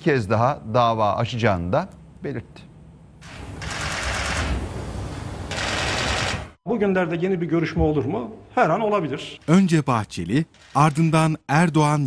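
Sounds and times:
camera shutters clicking rapidly: 3.6 - 4.6, 5.5 - 6.6.

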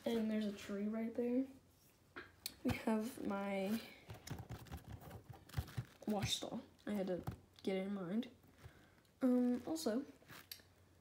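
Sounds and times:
handling noise on plastic toy: 3.6 - 7.4
soft taps and bumps: 4.0 - 7.5.

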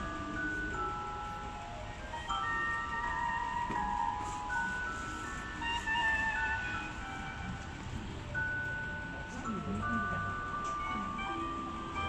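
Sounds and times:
slow melody of high held notes: 0.0 - 12.0.

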